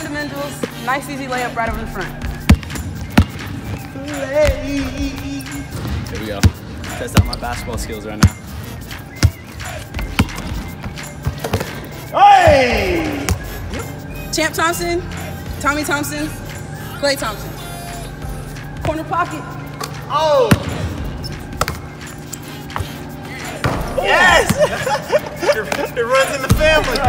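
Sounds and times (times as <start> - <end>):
background music: 0.0 - 27.0
basketball bouncing on hardwood: 10.0 - 11.7
ball thuds on hardwood court: 21.6 - 21.8.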